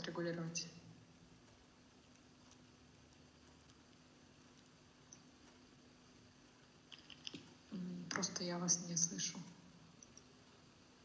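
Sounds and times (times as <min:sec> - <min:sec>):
low steady hum: 0:00.0 - 0:11.0
faint ticks: 0:01.4 - 0:07.4.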